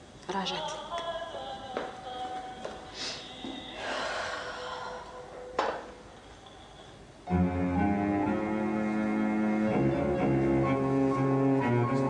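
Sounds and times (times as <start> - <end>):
woman breathing: 2.9 - 7.0.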